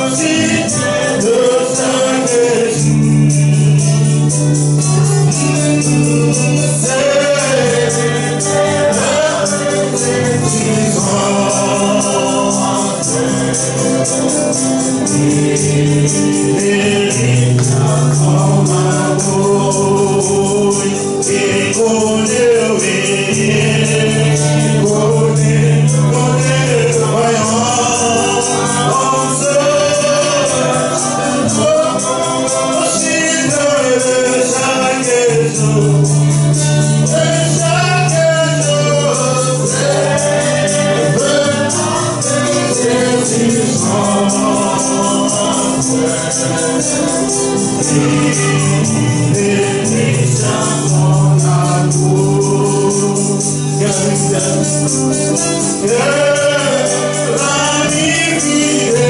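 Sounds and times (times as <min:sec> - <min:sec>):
group gospel singing: 0:00.0 - 0:59.0
steady bass: 0:00.0 - 0:59.0
tambourine beat: 0:00.0 - 0:59.0.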